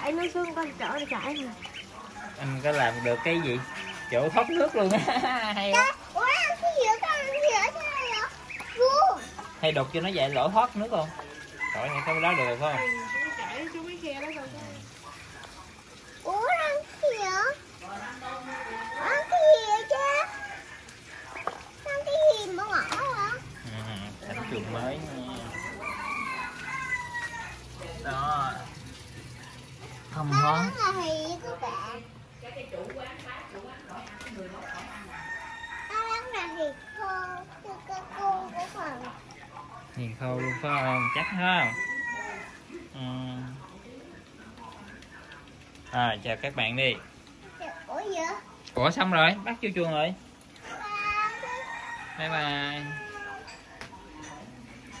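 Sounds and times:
rooster crowing: 2.0s - 5.2s, 11.3s - 14.0s, 18.0s - 21.3s, 24.3s - 28.6s, 34.2s - 37.4s, 40.2s - 42.7s, 50.6s - 53.7s
girl speaking: 5.8s - 9.4s, 16.3s - 17.6s, 21.9s - 23.4s, 30.7s - 32.0s, 36.1s - 39.1s, 47.9s - 48.4s.

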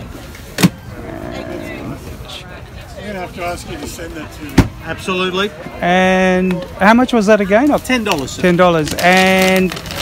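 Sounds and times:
faint voices: 0.0s - 10.0s.

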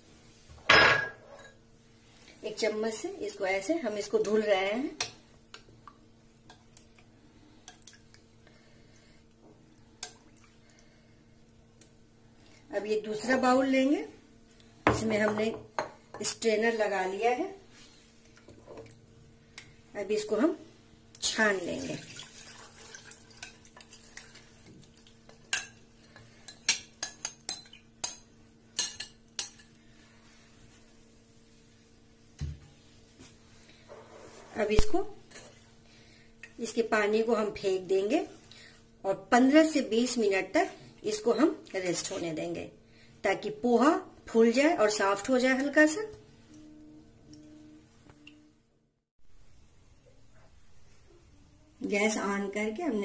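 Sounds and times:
water pouring into a strainer: 21.6s - 24.2s.

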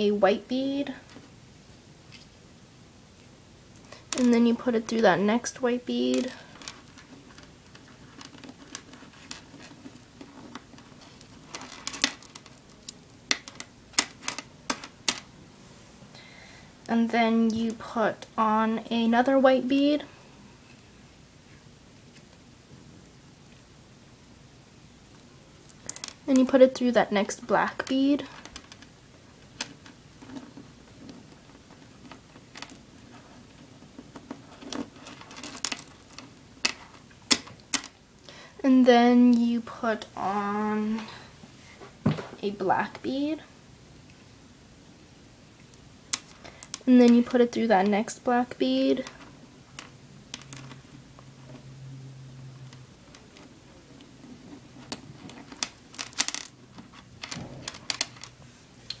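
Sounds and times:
plastic beads clicking: 55.6s - 56.6s.

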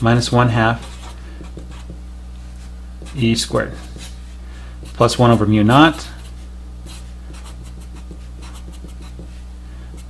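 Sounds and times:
marker writing on paper: 0.0s - 2.0s, 3.0s - 4.2s, 4.8s - 10.0s
low electrical hum: 0.0s - 10.0s.

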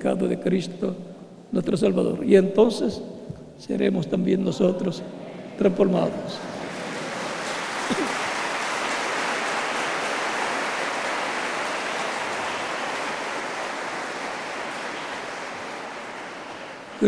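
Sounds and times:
audience applause: 6.3s - 17.0s
man coughing: 7.8s - 8.3s.

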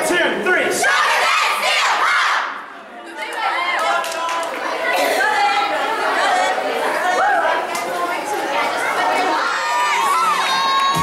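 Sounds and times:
many voices talking: 0.0s - 11.0s
girls shouting a cheer: 0.8s - 11.0s.

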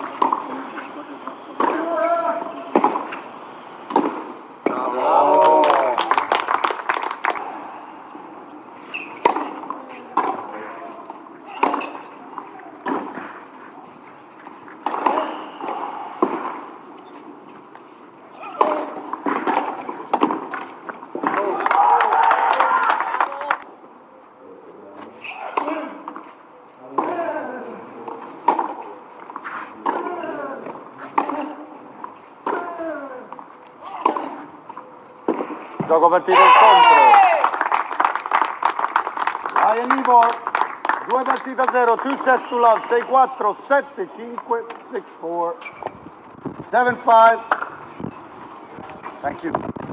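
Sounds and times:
voices: 0.0s - 37.8s, 39.5s - 46.0s
racket hitting tennis ball: 1.6s - 4.9s, 8.9s - 17.4s, 18.4s - 21.6s, 25.4s - 26.2s, 26.9s - 27.2s, 28.1s - 33.0s, 33.8s - 34.6s.

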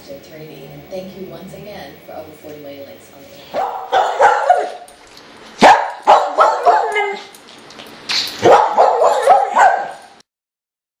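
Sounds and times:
dog barking and yipping: 3.5s - 5.0s, 5.6s - 7.4s, 8.3s - 10.2s.

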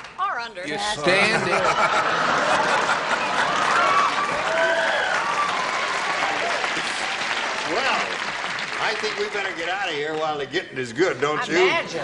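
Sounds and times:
laughter: 1.2s - 3.8s
audience applauding: 1.7s - 10.6s.

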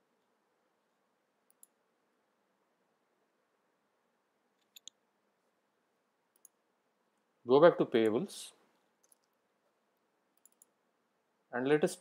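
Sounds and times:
computer mouse click: 1.4s - 1.8s, 4.6s - 5.0s, 6.3s - 6.6s, 9.0s - 9.4s, 10.3s - 10.8s.

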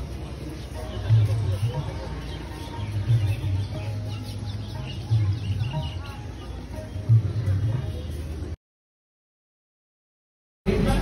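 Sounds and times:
small birds chirping: 0.0s - 8.6s.

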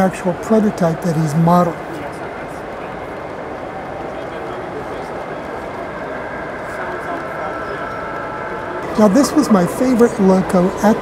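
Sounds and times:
murmur of many people talking: 0.0s - 11.0s.

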